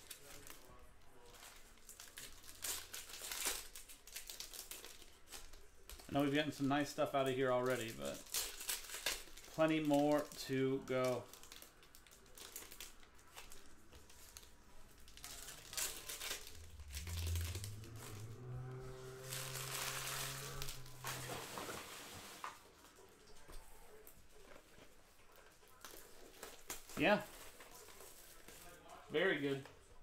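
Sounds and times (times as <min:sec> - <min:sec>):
foil wrappers crinkling and tearing: 0:00.0 - 0:23.1, 0:24.0 - 0:29.6
low hum: 0:14.2 - 0:22.2.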